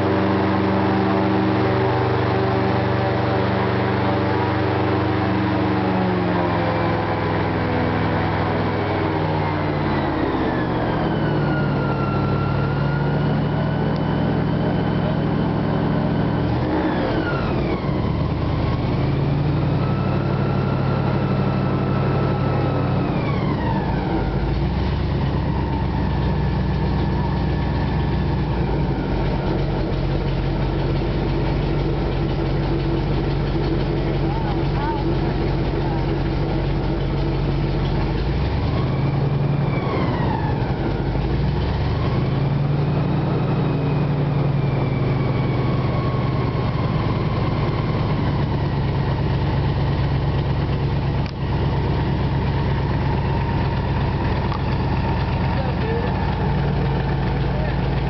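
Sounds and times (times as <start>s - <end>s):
airboat engine and propeller: 0.0s - 58.0s.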